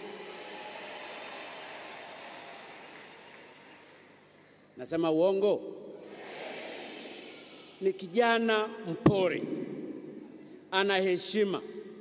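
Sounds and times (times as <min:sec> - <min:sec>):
audience crowd noise: 0:00.0 - 0:04.2, 0:06.0 - 0:07.9.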